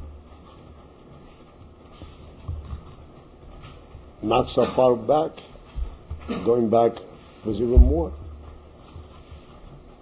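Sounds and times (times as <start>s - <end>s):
steady low rumble: 0.0s - 10.0s
soft low thump: 7.6s - 9.4s.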